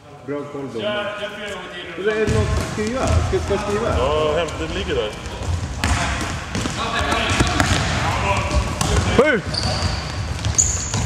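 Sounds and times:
basketball bouncing on hard floor: 0:02.2 - 0:04.0, 0:05.2 - 0:11.0.

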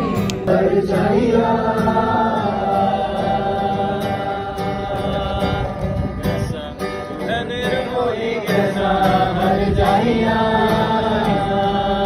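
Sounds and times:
people singing together: 0:00.0 - 0:12.0
strummed acoustic guitars: 0:00.0 - 0:12.0.

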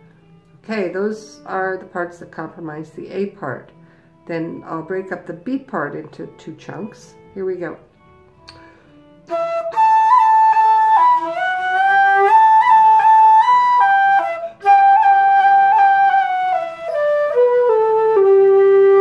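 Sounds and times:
flute playing slow tune: 0:08.4 - 0:19.0.

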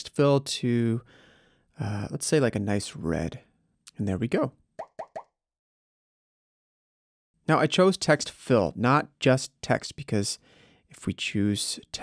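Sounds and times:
man speaking: 0:00.0 - 0:01.0, 0:01.8 - 0:04.5, 0:07.5 - 0:10.4, 0:11.0 - 0:12.0.

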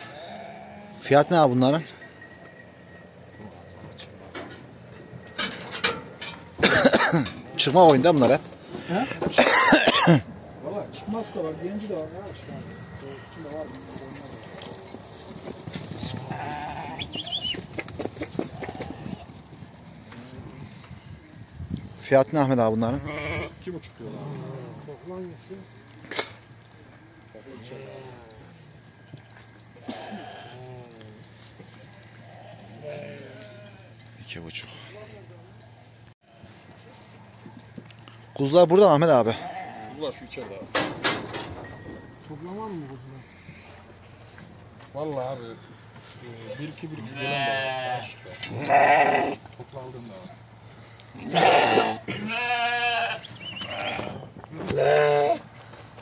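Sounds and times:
sheep bleating: 0:00.0 - 0:01.1, 0:10.9 - 0:12.8, 0:16.0 - 0:17.4, 0:22.9 - 0:24.8, 0:29.8 - 0:31.2, 0:32.1 - 0:34.0, 0:39.3 - 0:40.2, 0:46.9 - 0:49.4, 0:51.2 - 0:55.4.

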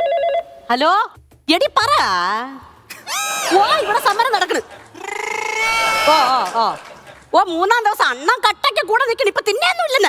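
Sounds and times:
woman speaking: 0:03.5 - 0:04.7, 0:06.0 - 0:10.0.

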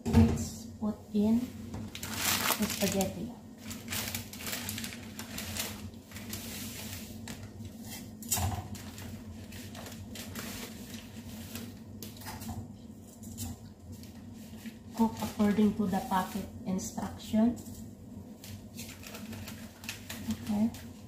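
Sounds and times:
water boiling in a pot: 0:00.6 - 0:21.0
dry spaghetti clicking: 0:18.4 - 0:21.0.

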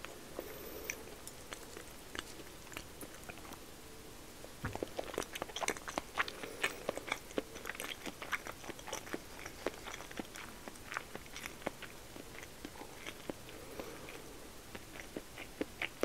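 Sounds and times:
mouth chewing wet clicks: 0:00.0 - 0:03.6, 0:04.6 - 0:16.0.

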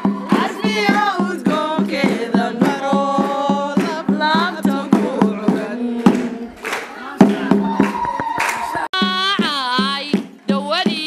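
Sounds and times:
percussion beat: 0:00.0 - 0:11.0
woman singing into microphone: 0:00.2 - 0:08.2, 0:09.0 - 0:11.0
hand-clapping: 0:02.1 - 0:04.0, 0:06.0 - 0:09.0.

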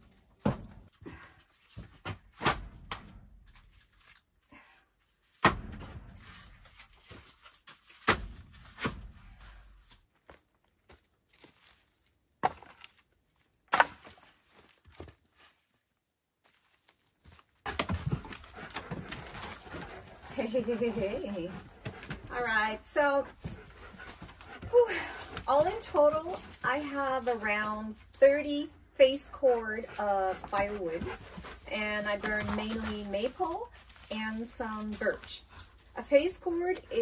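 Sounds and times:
firewood logs knocking together: 0:12.4 - 0:13.0, 0:13.7 - 0:15.2, 0:17.6 - 0:22.4
shuffling and rustling: 0:16.5 - 0:28.5, 0:29.1 - 0:37.0.

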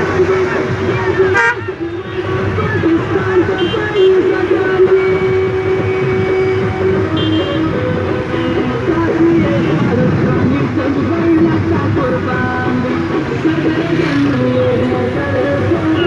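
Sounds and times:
car horns honking: 0:01.2 - 0:02.3, 0:03.5 - 0:04.4, 0:07.0 - 0:08.8
long steady horn blasts: 0:01.3 - 0:02.3, 0:05.7 - 0:08.8.

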